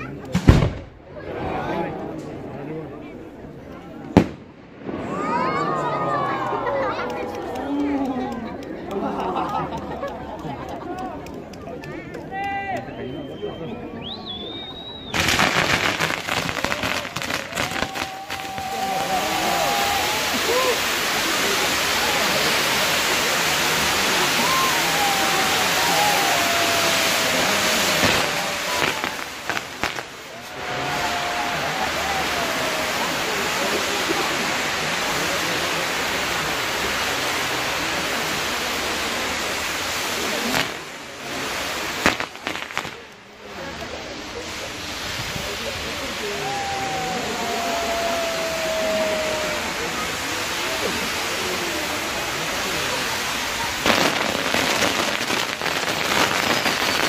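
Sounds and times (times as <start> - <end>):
fireworks hissing and crackling: 0.0 - 57.0.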